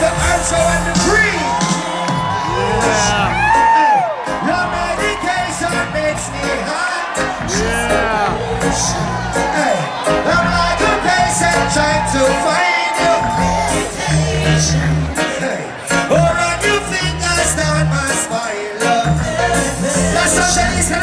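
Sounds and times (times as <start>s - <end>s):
crowd whooping: 0.0s - 21.0s
reggae band playing: 0.0s - 21.0s
person singing: 4.4s - 21.0s.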